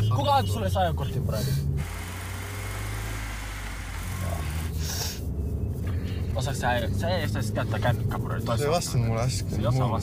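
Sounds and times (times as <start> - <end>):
car engine hum: 0.0 - 10.0
tyre and road noise: 0.0 - 10.0.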